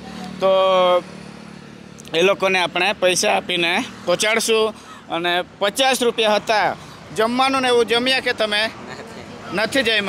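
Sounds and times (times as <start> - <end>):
faint vehicle engine: 0.0 - 10.0.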